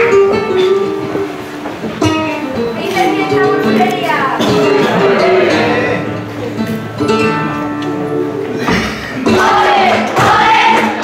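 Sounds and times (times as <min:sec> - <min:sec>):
flamenco guitar playing: 0:00.0 - 0:11.0.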